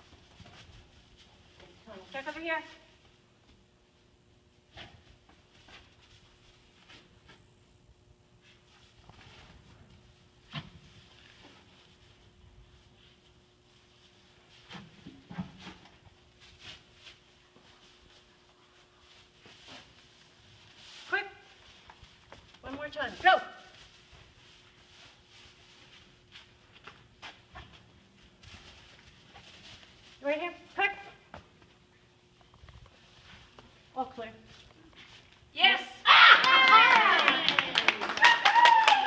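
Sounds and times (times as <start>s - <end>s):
low steady hum: 0.0s - 39.0s.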